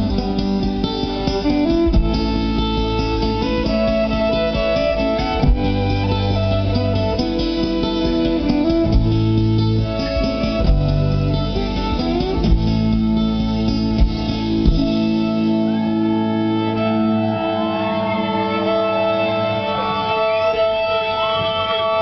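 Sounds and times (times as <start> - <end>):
live band playing instrumental: 0.0 - 22.0.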